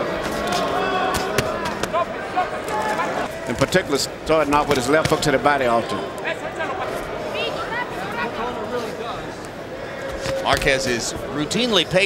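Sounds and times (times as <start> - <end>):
arena crowd shouting: 0.0 - 3.5.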